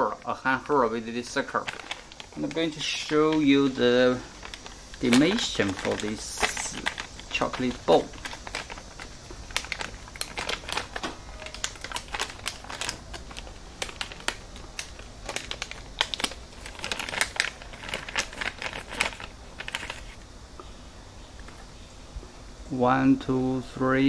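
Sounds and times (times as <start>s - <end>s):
plastic snack sachet crinkling: 0.0s - 20.2s.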